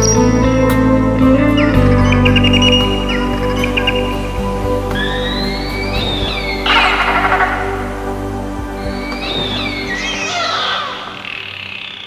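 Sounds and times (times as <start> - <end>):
sustained synthesizer tones: 0.0 - 12.0.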